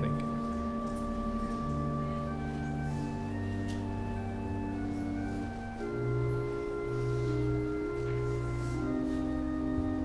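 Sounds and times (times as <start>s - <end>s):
soft organ chords: 0.0s - 10.0s.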